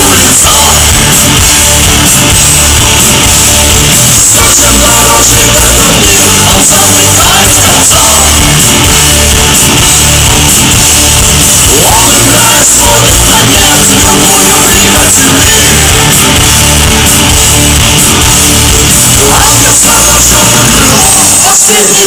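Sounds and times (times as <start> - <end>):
rock band playing live: 0.0 - 22.0.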